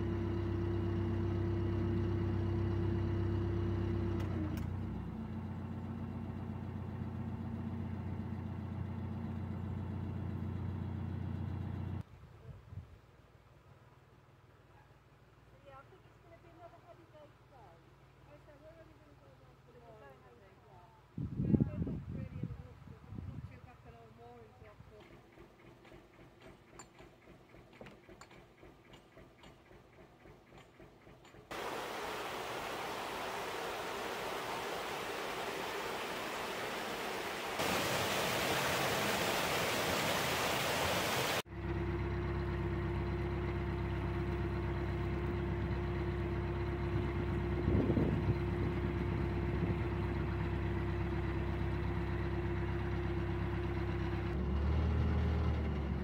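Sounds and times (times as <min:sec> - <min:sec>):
boat diesel engine running: 0:31.6 - 0:56.0.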